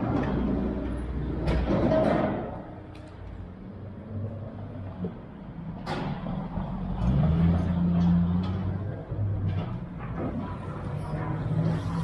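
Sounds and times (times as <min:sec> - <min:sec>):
vehicle engines humming: 0:00.0 - 0:12.0.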